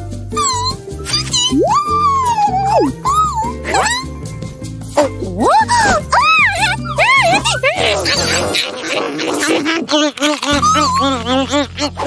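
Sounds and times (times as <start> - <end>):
cartoon music with bass line: 0.0 - 12.0.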